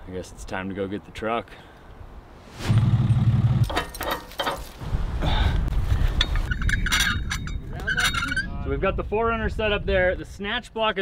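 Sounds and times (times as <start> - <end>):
vehicle engine rumbling: 2.4 - 4.8
metallic clinks and knocks: 3.6 - 4.8, 6.2 - 8.4.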